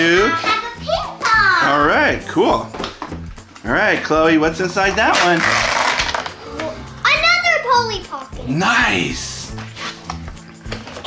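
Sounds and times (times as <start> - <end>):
background music: 0.0 - 11.0
child exclaiming excitedly: 0.4 - 1.7, 7.0 - 8.4.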